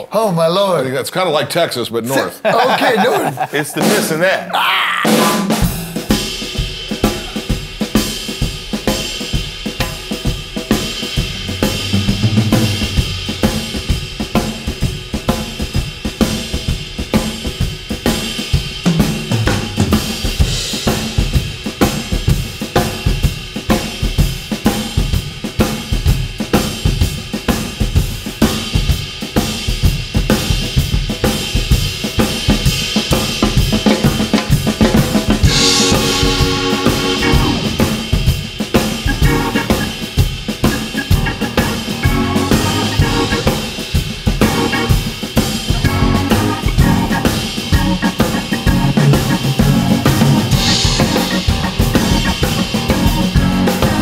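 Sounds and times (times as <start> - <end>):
drum kit shuffle groove: 2.2 - 54.0
sustained keyboard chords: 11.2 - 13.9, 35.4 - 38.0, 39.1 - 40.0, 40.7 - 43.7, 44.4 - 54.0.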